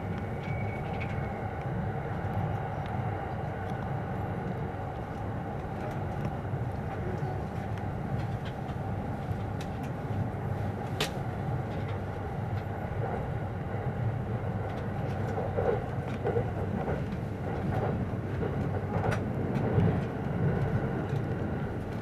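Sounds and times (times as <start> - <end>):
train rumbling: 0.0 - 22.0.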